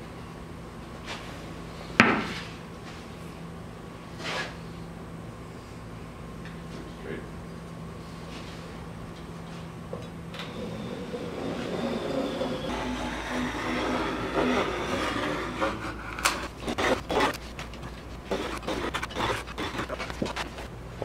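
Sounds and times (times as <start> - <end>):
knife cutting wood veneer: 13.6 - 20.7
scrapes and taps: 15.6 - 20.7.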